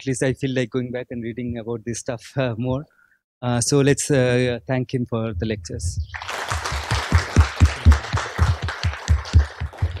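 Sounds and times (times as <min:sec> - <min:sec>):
separate claps: 0:06.1 - 0:10.0
audience applauding: 0:06.2 - 0:10.0.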